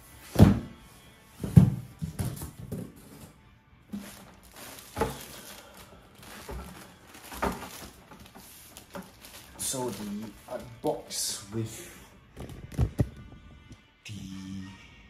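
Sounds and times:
cardboard box knocking on wood: 1.4 - 3.0
plastic crinkling: 3.9 - 10.9.

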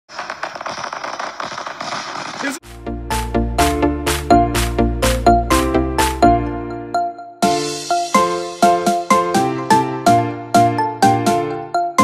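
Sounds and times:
rapid firework crackles: 0.0 - 2.6.

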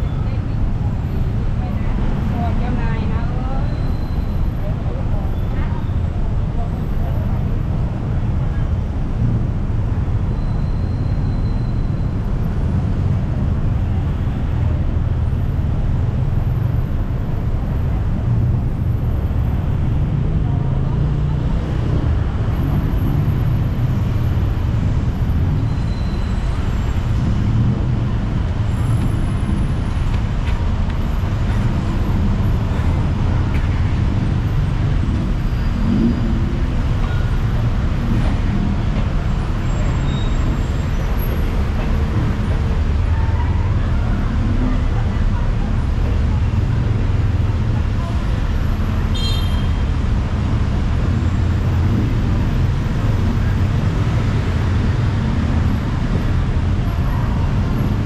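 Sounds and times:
city street traffic rumble: 0.0 - 58.0.

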